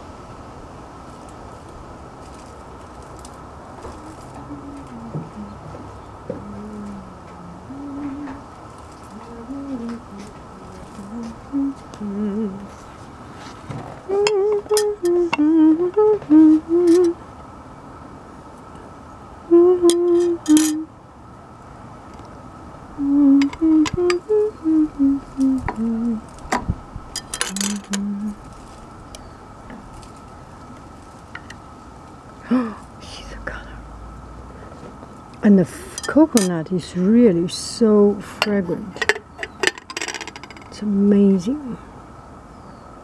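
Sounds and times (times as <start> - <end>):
person humming a slow tune: 3.8 - 13.0, 13.9 - 17.3, 19.4 - 21.0, 22.9 - 26.4, 27.4 - 28.7, 32.4 - 33.9.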